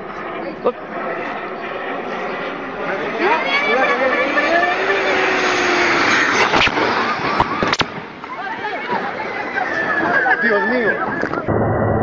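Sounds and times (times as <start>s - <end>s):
loud rushing noise: 0.0s - 12.0s
sharp cracks: 6.0s - 8.4s.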